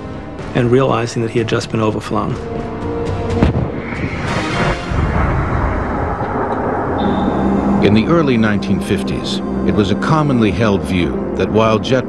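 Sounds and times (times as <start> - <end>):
background music: 0.0 - 12.0
rumbling rush: 2.9 - 10.6
sonic boom bang: 3.3 - 8.2.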